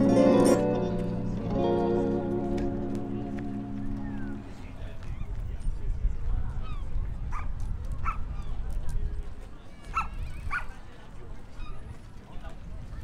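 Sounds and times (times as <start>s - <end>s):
wind on microphone: 4.1s - 10.8s.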